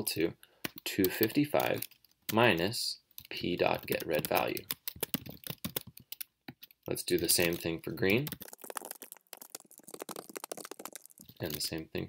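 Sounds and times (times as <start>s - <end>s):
computer keyboard typing: 0.6s - 11.8s.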